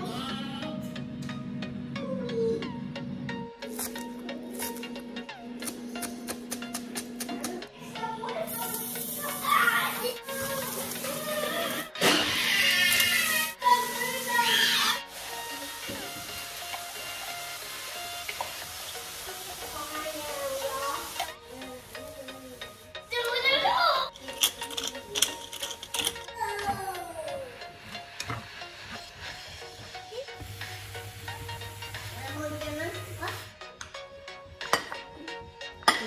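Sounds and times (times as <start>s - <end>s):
background music: 0.0s - 36.0s
food sizzling in a pan: 8.5s - 23.6s, 26.8s - 33.5s.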